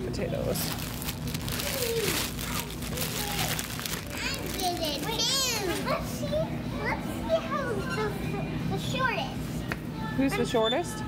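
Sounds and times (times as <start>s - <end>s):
young children chattering: 1.4s - 11.0s.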